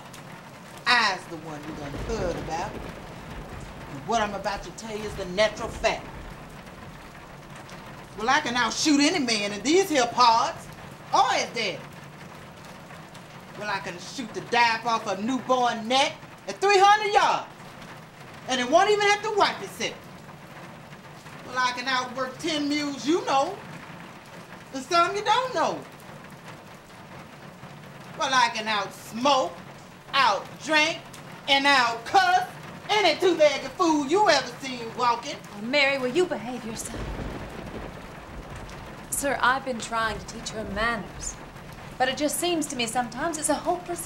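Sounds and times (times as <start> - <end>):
steady rain: 0.0 - 44.0.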